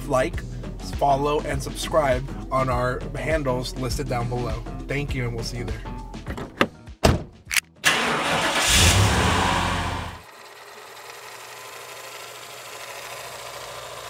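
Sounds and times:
car engine starting and running: 7.1s - 14.0s.

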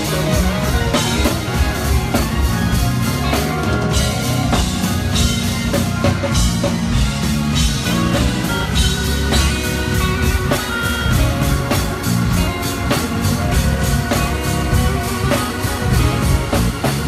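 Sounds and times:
drum kit steady beat: 0.0s - 17.0s
electric guitar: 0.0s - 17.0s.

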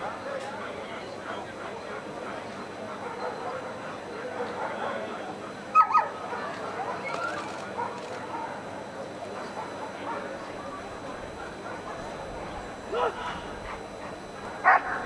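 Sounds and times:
distant voices: 0.0s - 15.0s
dog barking sharply: 5.8s - 6.1s, 14.6s - 15.0s.

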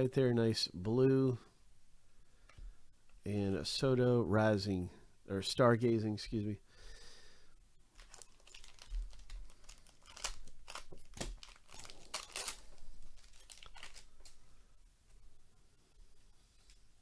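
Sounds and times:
foil wrapper tearing and crinkling: 8.0s - 14.4s.

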